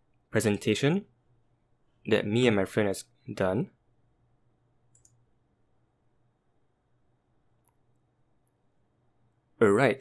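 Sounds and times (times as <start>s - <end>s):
computer mouse click: 4.9s - 5.2s.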